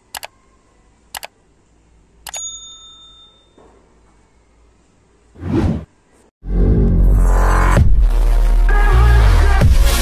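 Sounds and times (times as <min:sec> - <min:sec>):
mouse clicks: 0:00.1 - 0:00.4, 0:01.2 - 0:01.4
notification bell ding: 0:02.3 - 0:03.6.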